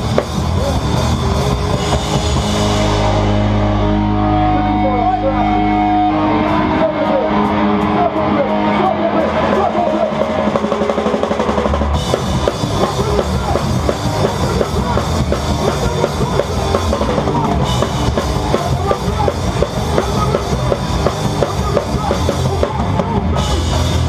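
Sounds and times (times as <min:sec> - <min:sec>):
drums: 0:00.0 - 0:24.0
hardcore band playing live: 0:00.0 - 0:24.0.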